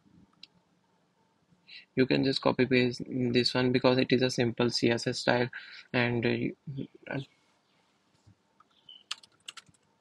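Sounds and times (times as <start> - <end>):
faint keyboard keystrokes: 8.6 - 9.9.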